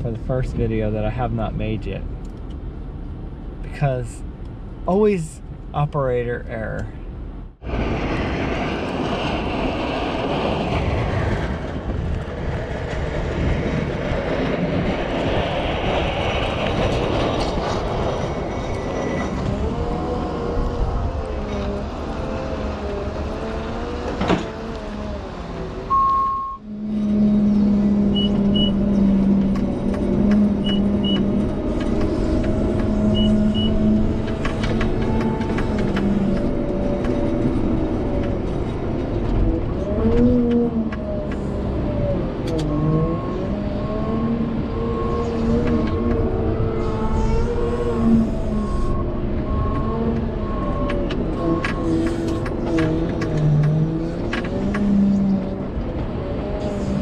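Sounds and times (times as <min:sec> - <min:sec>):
in-cab engine drone: 0:00.0 - 0:57.0
diesel engine under load: 0:07.2 - 0:57.0
short paired beeps: 0:25.9 - 0:26.6.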